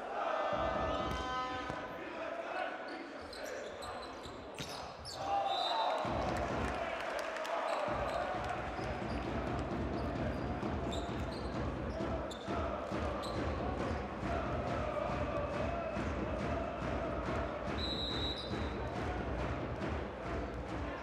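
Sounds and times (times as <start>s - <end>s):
crowd noise and voices: 0.0s - 21.0s.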